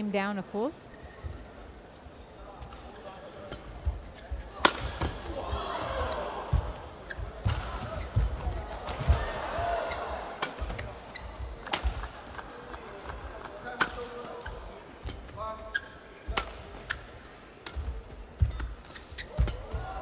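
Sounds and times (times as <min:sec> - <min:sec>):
racket striking shuttlecock: 0:04.6 - 0:05.2.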